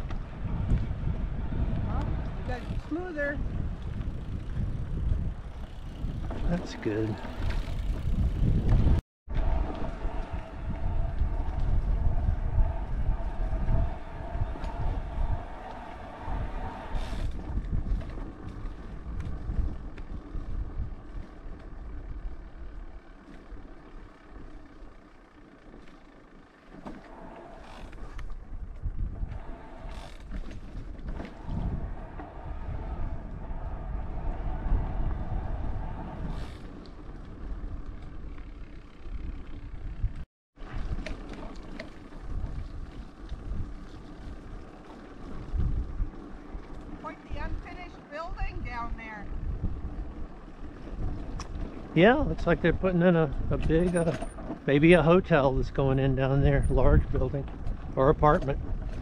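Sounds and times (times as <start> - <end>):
wind buffeting microphone: 0.0 - 22.9, 27.2 - 59.0.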